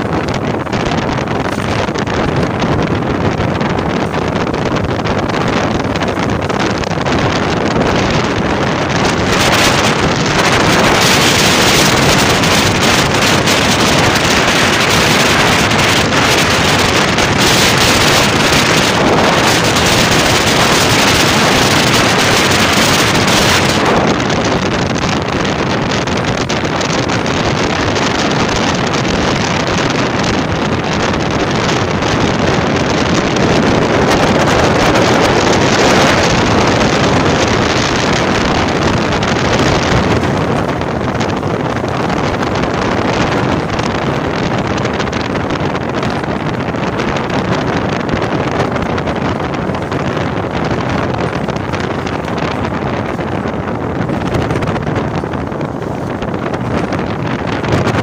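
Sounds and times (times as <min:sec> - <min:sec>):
wind and road noise: 0:00.0 - 0:58.0
wind buffeting microphone: 0:00.0 - 0:58.0.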